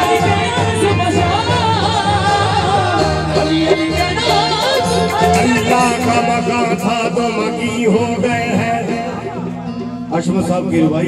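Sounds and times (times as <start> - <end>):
person singing ornamented line: 0.0 - 9.0
harmonium chords: 0.0 - 10.7.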